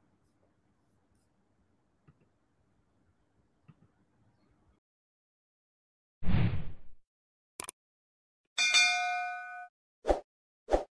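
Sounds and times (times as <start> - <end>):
notification bell chime: 8.6 - 9.7.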